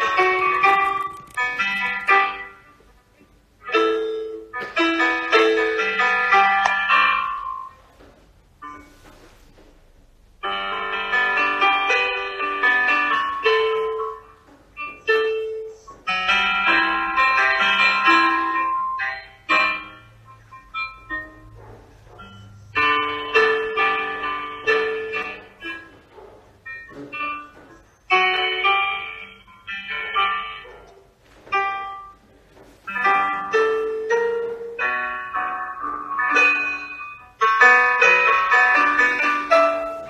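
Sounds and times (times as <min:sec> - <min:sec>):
piano chords and melody: 0:00.0 - 0:09.5, 0:10.1 - 0:40.0.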